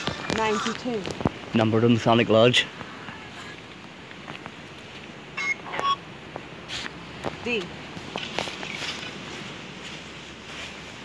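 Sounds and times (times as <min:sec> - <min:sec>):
faint steady hiss: 0:00.0 - 0:11.0
short electronic beeps: 0:05.4 - 0:06.0.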